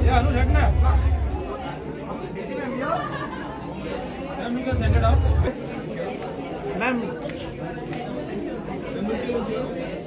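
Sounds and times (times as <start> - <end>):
people talking and chattering: 0.0 - 10.0.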